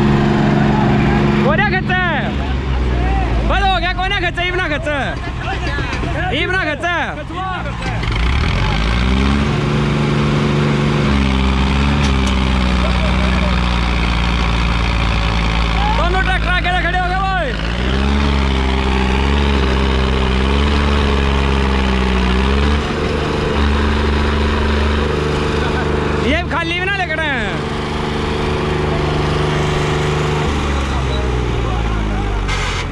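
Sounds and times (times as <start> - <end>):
tractor engines under load: 0.0 - 32.9
man shouting: 15.8 - 17.5.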